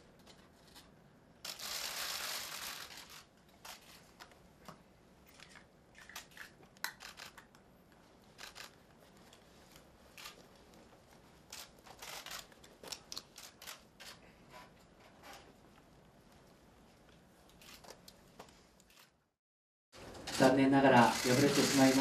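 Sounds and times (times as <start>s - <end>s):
camera shutters clicking: 5.3s - 7.5s, 8.4s - 8.8s, 10.2s - 10.4s, 11.5s - 14.2s.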